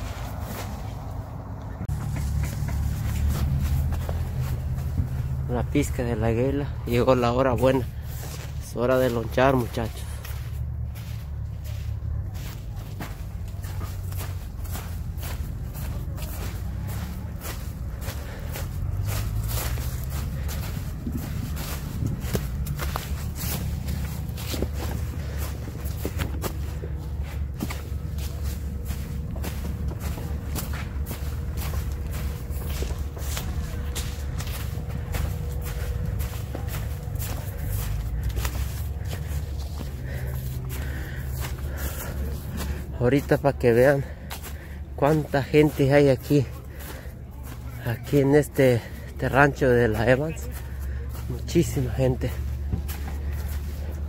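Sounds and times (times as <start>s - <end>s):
footsteps walking: 0.0s - 54.0s
steady low rumble: 0.0s - 54.0s.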